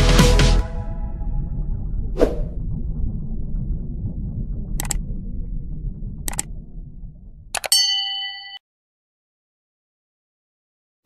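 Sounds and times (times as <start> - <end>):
quick clicks: 6.3 - 6.5, 7.6 - 7.8
notification bell ding: 7.6 - 8.6.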